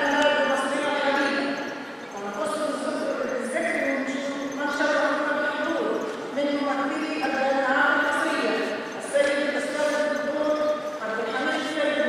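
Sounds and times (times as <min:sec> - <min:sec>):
woman speaking over loudspeaker: 0:00.0 - 0:12.0.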